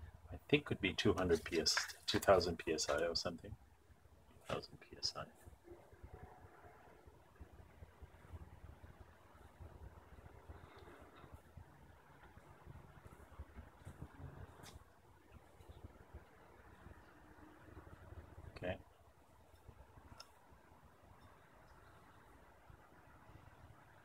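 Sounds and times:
faint low rumble: 2.4 - 24.0.

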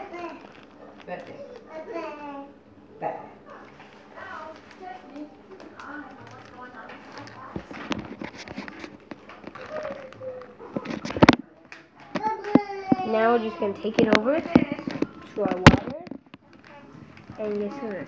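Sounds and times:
child speaking: 0.0 - 0.5, 1.4 - 2.6, 12.2 - 15.8, 16.5 - 18.0
rustling and clicks: 0.0 - 1.7, 3.7 - 13.2.

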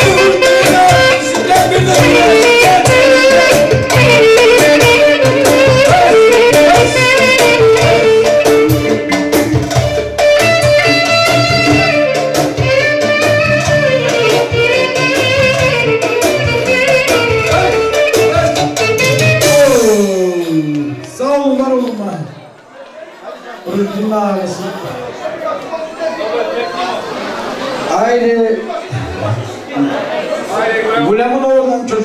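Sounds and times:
clarinet melody: 0.0 - 20.1
steady drum beat: 0.0 - 20.5
keyboard: 0.0 - 22.4.

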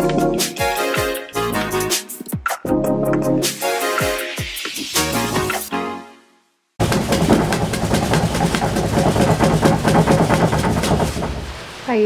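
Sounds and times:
parrot wings flapping: 6.8 - 11.6.

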